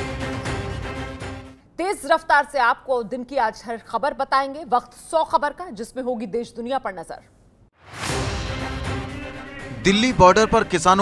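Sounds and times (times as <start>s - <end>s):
news theme music: 0.0s - 1.6s, 7.8s - 11.0s
woman speaking: 1.8s - 7.3s.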